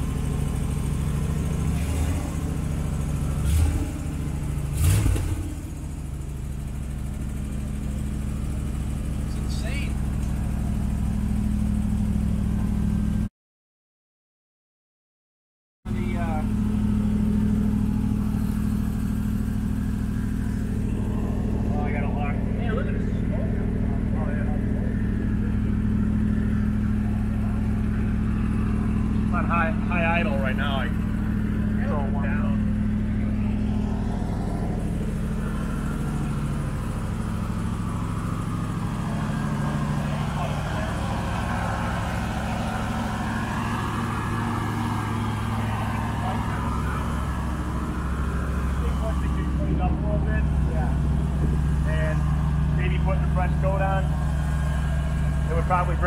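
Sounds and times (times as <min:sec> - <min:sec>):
car engine idling: 0:00.0 - 0:13.3, 0:15.9 - 0:56.0.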